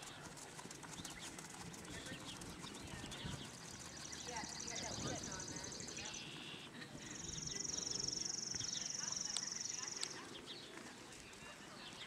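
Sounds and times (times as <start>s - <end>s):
horse hoofbeats on sand: 0.0s - 5.6s.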